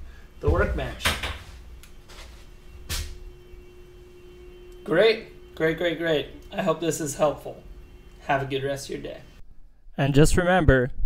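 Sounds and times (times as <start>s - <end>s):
faint steady tone: 0.0s - 9.4s.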